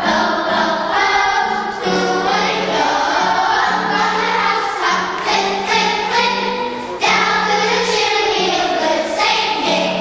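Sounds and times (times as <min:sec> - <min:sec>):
children's choir singing: 0:00.0 - 0:10.0.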